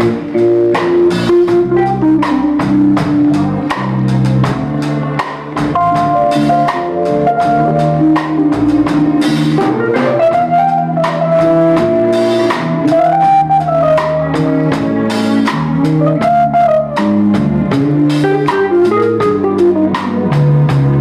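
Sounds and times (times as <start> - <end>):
drum kit beat: 0.0 - 21.0
guitar: 0.0 - 21.0
jazz band playing: 0.0 - 21.0
keyboard: 0.0 - 21.0.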